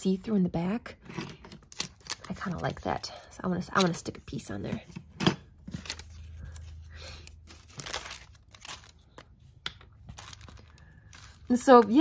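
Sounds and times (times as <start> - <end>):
paper crinkling and rustling: 5.6 - 12.0.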